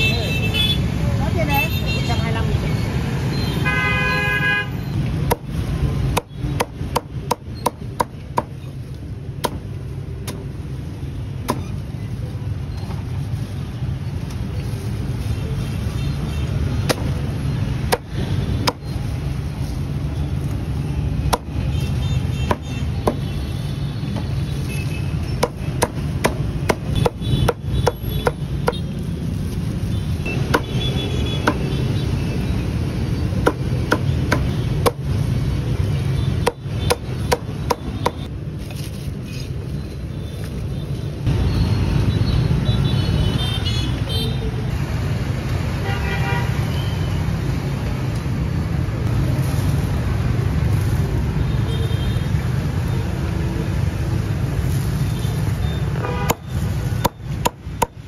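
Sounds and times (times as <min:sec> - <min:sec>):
traffic rumble: 0:00.0 - 0:58.0
cleaver chopping on wooden block: 0:06.1 - 0:08.6, 0:09.4 - 0:09.6, 0:21.3 - 0:21.5, 0:25.4 - 0:28.8, 0:33.4 - 0:35.1, 0:36.4 - 0:38.2.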